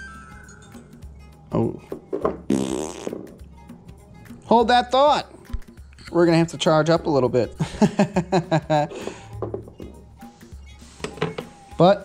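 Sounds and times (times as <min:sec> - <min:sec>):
quiet background music: 0:00.0 - 0:12.0
man blowing raspberry: 0:02.4 - 0:03.4.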